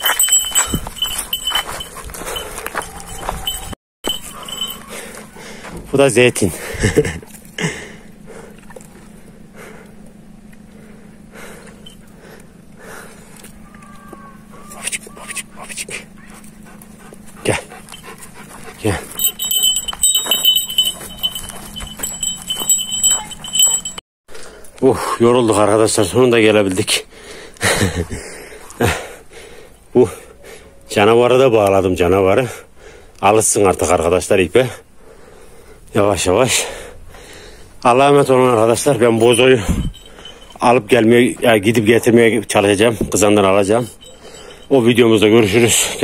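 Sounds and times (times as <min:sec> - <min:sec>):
metal chain leash rattling: 0:00.0 - 0:05.2, 0:17.4 - 0:24.0, 0:38.3 - 0:41.0, 0:43.1 - 0:46.0
faint high ringing: 0:00.0 - 0:05.4, 0:17.8 - 0:24.0, 0:38.2 - 0:41.4, 0:42.8 - 0:46.0.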